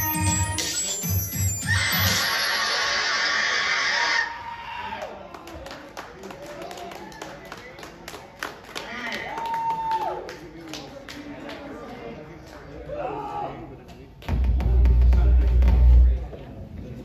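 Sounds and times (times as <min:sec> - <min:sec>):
crowd member whooping: 0:01.6 - 0:05.1
audience applause and cheering: 0:08.7 - 0:10.5.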